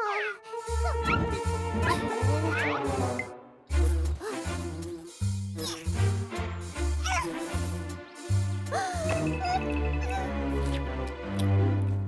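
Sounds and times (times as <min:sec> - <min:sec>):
cartoon music with bass line: 0:00.0 - 0:12.0.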